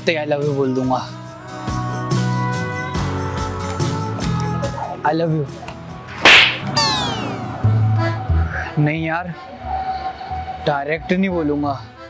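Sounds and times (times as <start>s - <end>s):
soft background music: 0.0s - 6.2s, 6.8s - 12.0s
loud slap across the face: 6.2s - 6.8s.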